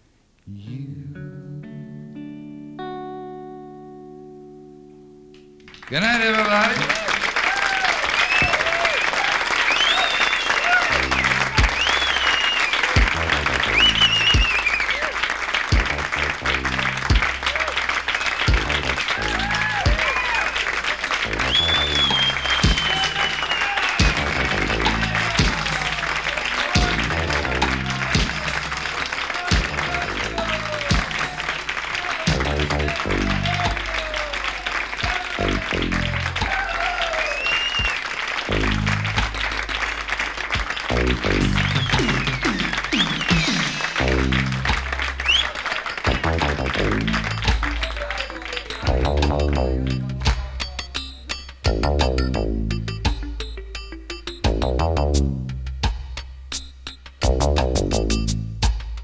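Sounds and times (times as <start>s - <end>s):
audience applause and cheering: 5.7s - 51.2s
low steady musical beat: 18.4s - 20.0s, 24.0s - 36.8s, 46.1s - 59.0s.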